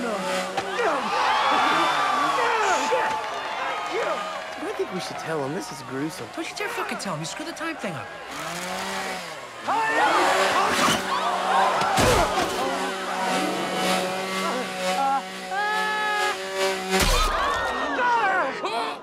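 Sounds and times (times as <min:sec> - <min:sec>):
chainsaw running: 0:00.0 - 0:18.3.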